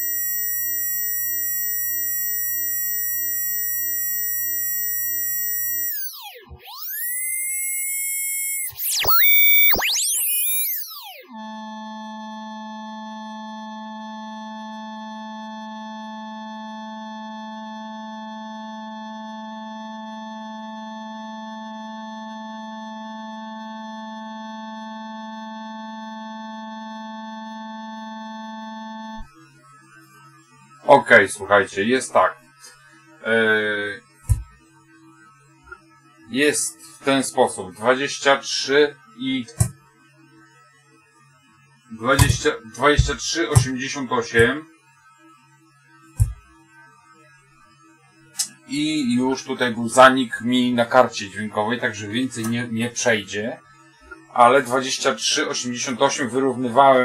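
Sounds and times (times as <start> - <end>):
high whistling test tones: 0.0 - 11.4, 42.0 - 44.5
tones sweeping up and down: 0.0 - 11.4, 42.0 - 44.5
low hum-like tone: 41.9 - 44.6.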